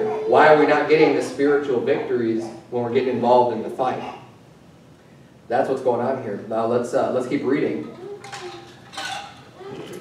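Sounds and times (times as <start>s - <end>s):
metal tumbler clinking and knocking: 7.8s - 10.0s.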